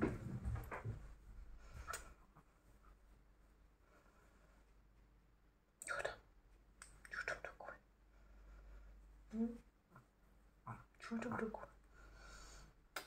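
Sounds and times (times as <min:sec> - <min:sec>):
soft whispering: 0:05.8 - 0:12.8.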